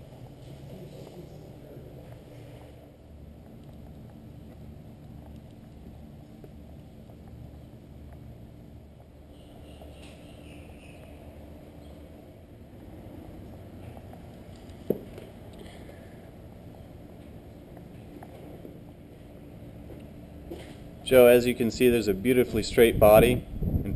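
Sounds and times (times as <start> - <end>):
low background rumble: 0.0 - 23.9.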